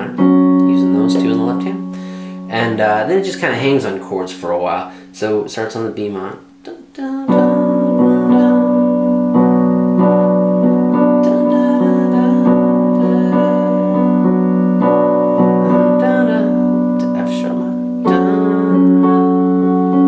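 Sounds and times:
keyboard piano chords: 0.0 - 20.0.

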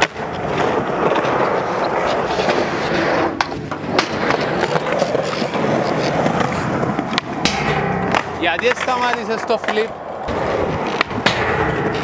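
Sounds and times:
skateboard clacking on ground: 0.0 - 12.0
skateboard wheels rolling on concrete: 0.0 - 12.0.

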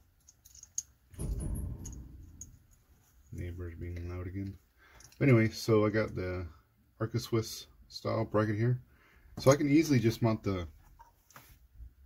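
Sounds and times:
man talking: 3.3 - 4.6, 5.2 - 8.8, 9.4 - 10.8.

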